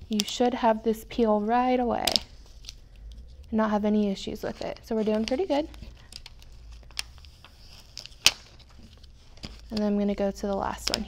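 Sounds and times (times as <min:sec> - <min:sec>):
plastic sheets rustling: 0:00.0 - 0:11.0.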